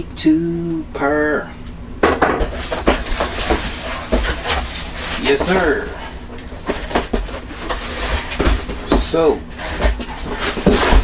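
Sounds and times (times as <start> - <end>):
cardboard box scraping and rustling: 2.5 - 11.0.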